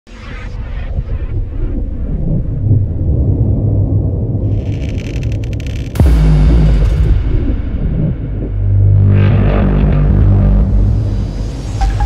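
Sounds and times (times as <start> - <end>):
deep rumbling drone: 0.1 - 12.0
crackling: 4.4 - 7.0
heavy boom: 5.9 - 12.0.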